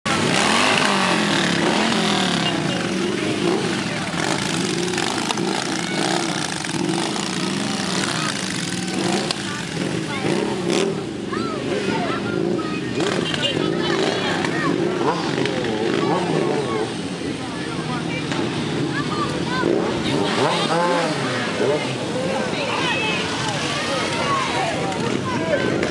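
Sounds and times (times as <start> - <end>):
motorcycle engines revving: 0.0 - 25.9
people's voices: 0.1 - 25.9.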